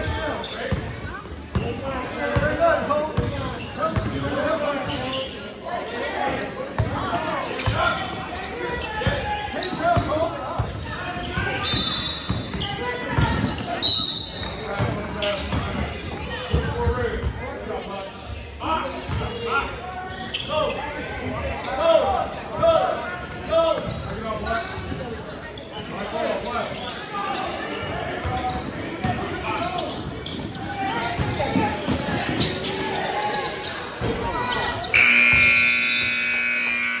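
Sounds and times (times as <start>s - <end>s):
loud scoreboard buzzer: 34.9s - 37.0s.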